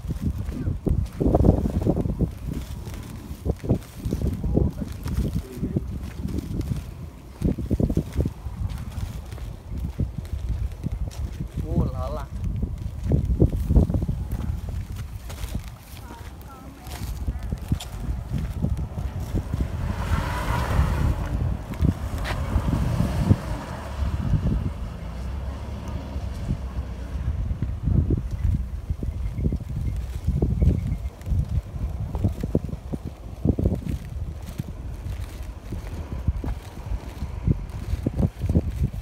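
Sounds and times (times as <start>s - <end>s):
wind buffeting a microphone: 0.0s - 39.0s.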